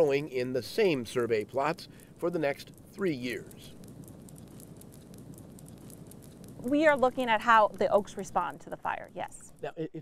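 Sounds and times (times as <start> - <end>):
fire crackling in dry leaves: 0.0 - 9.6.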